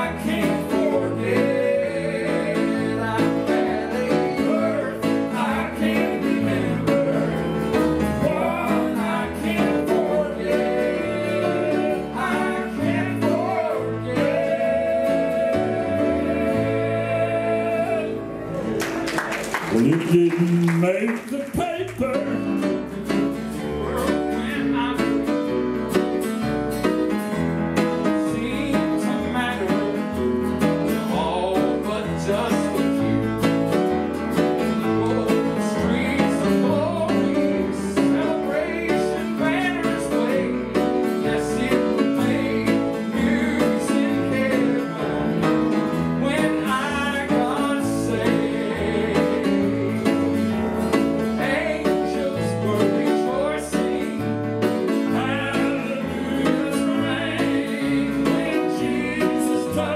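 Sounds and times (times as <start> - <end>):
man singing: 0.0 - 18.3, 19.7 - 22.8, 23.6 - 25.6, 28.0 - 33.4, 34.7 - 59.9
bass line: 0.0 - 59.9
guitar: 0.0 - 59.9
piano chords: 0.0 - 59.9.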